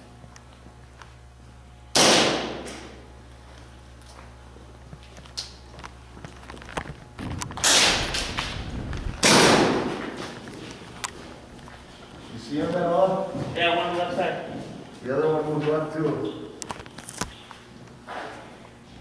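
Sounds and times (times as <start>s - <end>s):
loud echoing bangs: 7.2s - 10.4s.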